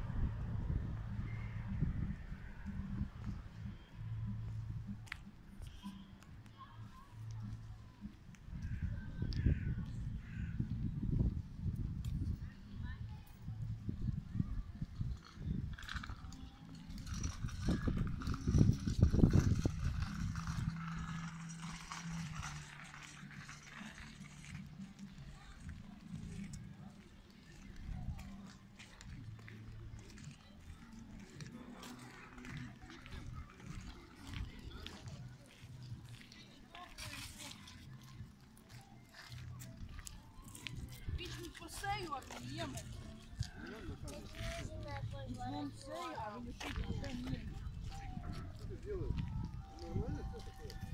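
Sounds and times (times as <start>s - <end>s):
people talking outdoors: 0.0s - 50.9s.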